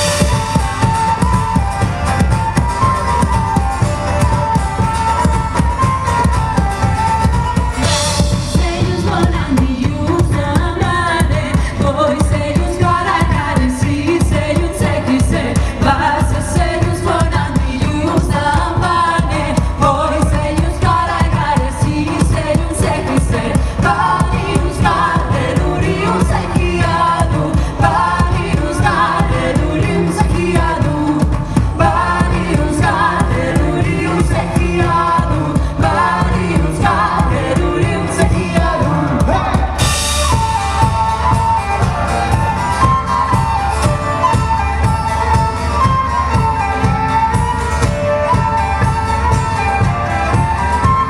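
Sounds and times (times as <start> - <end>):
hurdy-gurdy: 0.0 - 11.8, 16.8 - 51.0
steady drum beat: 0.0 - 51.0
woman singing: 8.4 - 39.6.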